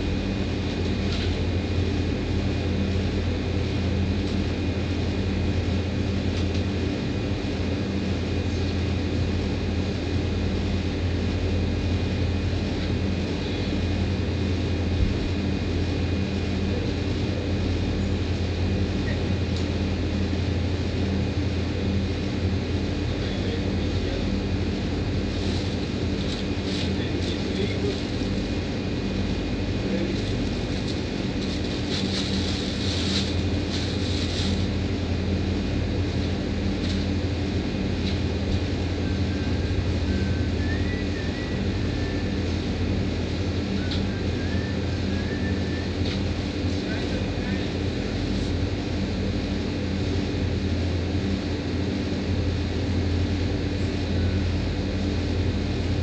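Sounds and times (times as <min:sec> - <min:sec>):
air conditioner hum and fan: 0:00.0 - 0:56.0.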